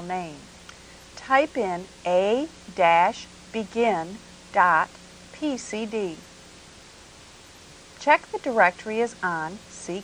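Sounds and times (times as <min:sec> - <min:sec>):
woman's voice: 0:00.0 - 0:00.5, 0:01.2 - 0:06.3, 0:08.0 - 0:10.0
tape hiss: 0:00.0 - 0:10.0.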